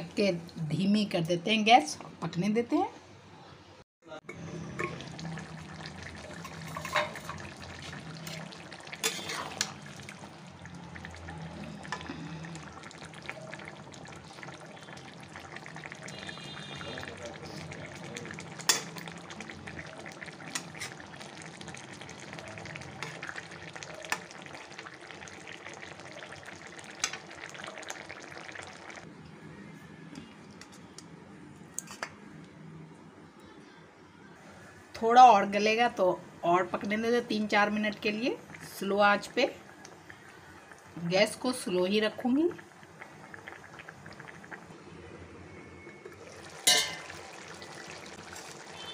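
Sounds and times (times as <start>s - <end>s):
curry simmering and sizzling: 4.3s - 29.1s, 36.6s - 48.9s
spatula scraping a pan: 9.0s - 9.7s.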